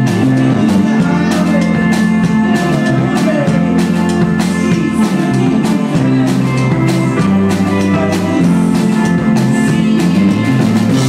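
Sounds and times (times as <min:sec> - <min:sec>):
drum and cymbal hits: 0:00.0 - 0:11.0
rock band playing live: 0:00.0 - 0:11.0.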